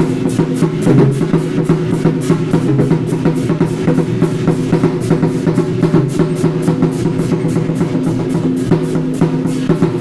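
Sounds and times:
barrel drums beaten in rhythm: 0.0 - 10.0.

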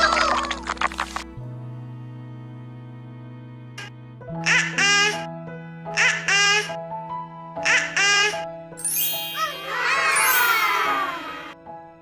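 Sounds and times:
background music with held notes: 0.0 - 12.0
baby laughing: 3.8 - 5.3, 5.9 - 6.8, 7.6 - 8.4.

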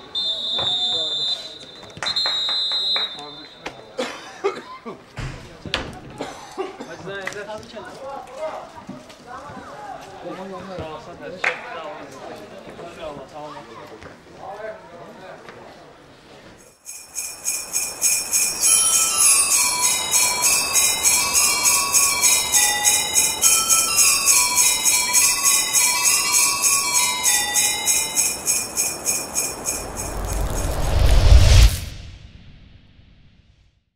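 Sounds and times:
sleigh bells shaken: 16.6 - 31.6
tinkling melody: 16.7 - 30.8
rising swell to deep hit: 29.0 - 33.8.

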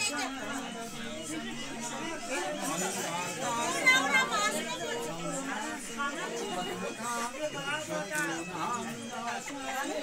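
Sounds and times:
people talking at once: 0.0 - 10.0.

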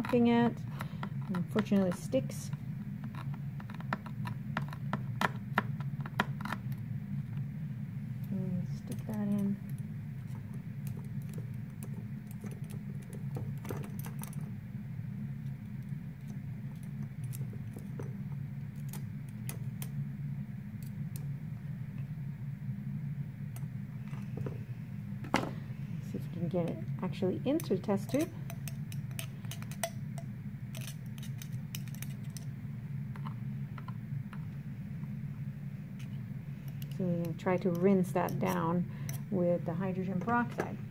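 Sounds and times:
steady low hum: 0.0 - 40.9.

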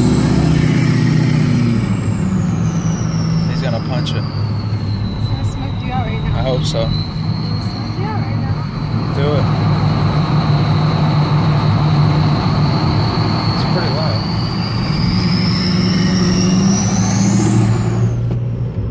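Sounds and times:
turbocharger whistling: 0.0 - 18.5
diesel exhaust drone: 0.0 - 18.9.

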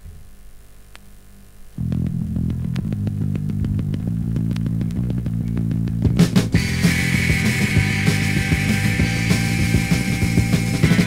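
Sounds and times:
bass guitar picked riff: 1.8 - 11.0.

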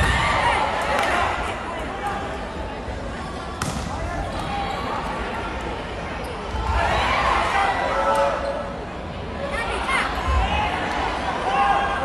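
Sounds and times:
volleyball struck sharply: 3.6 - 4.0.

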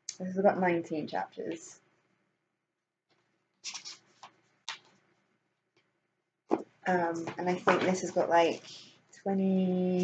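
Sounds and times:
book pages flipping: 3.1 - 5.2.

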